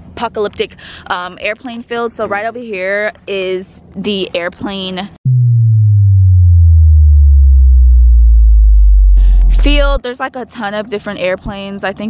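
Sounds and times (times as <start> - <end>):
synthesized bass drop: 5.2 - 10.0.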